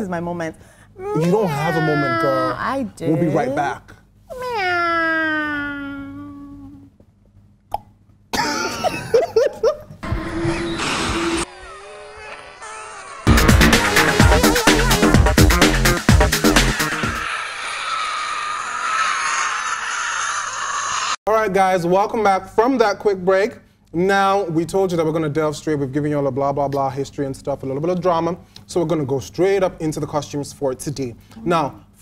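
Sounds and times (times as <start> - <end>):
hissing whooshing sound effect: 13.3 - 19.0.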